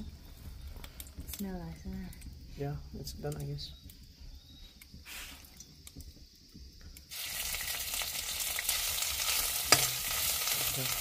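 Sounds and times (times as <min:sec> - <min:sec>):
spices sizzling in hot oil: 0:00.0 - 0:11.0.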